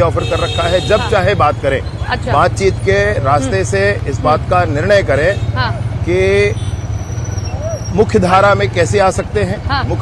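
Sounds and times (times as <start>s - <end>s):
motorcycle engine rumble: 0.0s - 10.0s.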